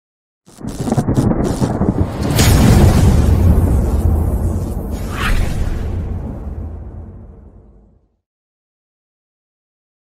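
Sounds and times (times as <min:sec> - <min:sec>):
deep thunder-like rumbling: 0:00.6 - 0:08.0.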